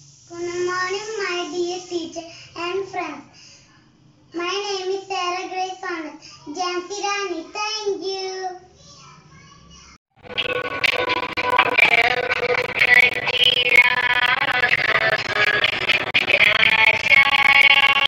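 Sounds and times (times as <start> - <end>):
young child singing: 4.4 - 10.0.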